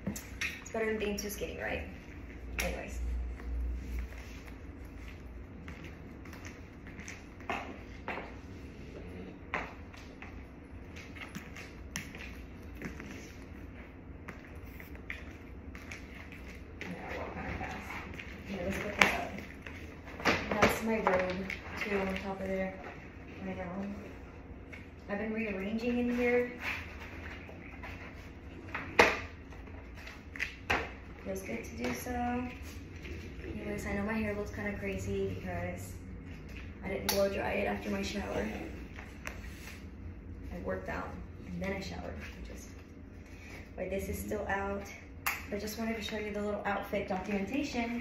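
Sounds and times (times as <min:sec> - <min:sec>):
low room hum: 0:00.0 - 0:48.0.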